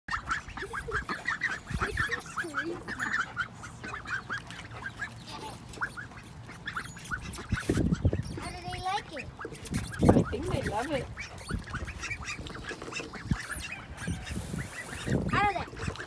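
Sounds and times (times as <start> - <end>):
ducklings peeping: 0.1 - 16.0
lower quacking calls: 0.1 - 16.0.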